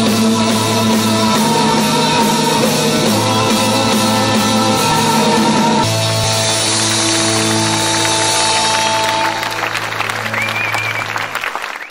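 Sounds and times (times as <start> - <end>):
band chord ringing out: 0.0 - 10.4
audience applause: 4.8 - 11.9.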